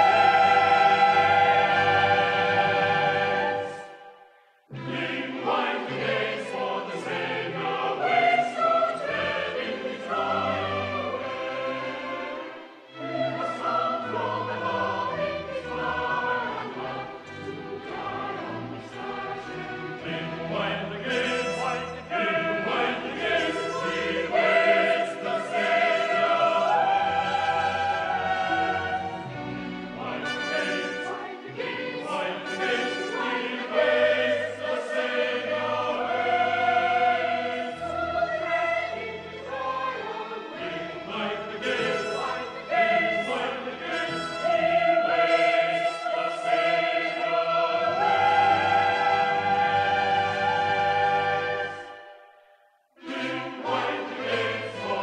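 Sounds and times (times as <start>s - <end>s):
choir singing a sacred piece: 0.0s - 55.0s.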